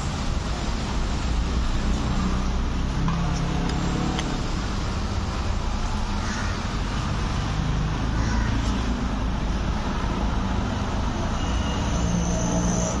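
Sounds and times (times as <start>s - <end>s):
street traffic rumble: 0.0s - 13.0s.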